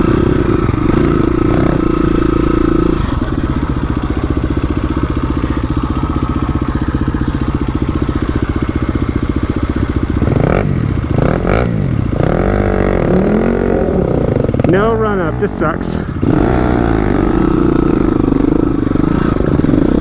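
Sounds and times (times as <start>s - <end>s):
dirt bike engine revving: 0.0s - 20.0s.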